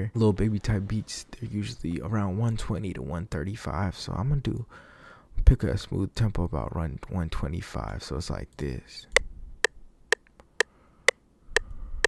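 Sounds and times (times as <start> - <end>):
metronome clicking: 9.1 - 11.7.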